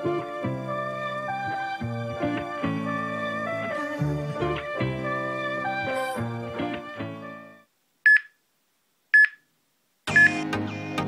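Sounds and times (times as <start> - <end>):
background music: 0.0 - 7.7, 10.1 - 11.0
short electronic beeps: 8.1 - 8.4, 9.2 - 9.4, 10.1 - 10.4.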